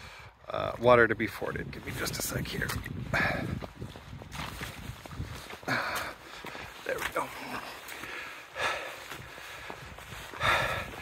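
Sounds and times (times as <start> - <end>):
man breathing heavily: 0.0 - 0.4, 3.0 - 3.9, 5.2 - 11.0.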